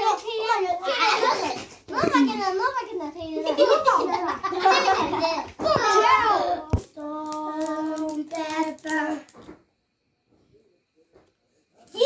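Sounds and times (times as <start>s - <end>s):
children chanting: 3.6s - 9.3s.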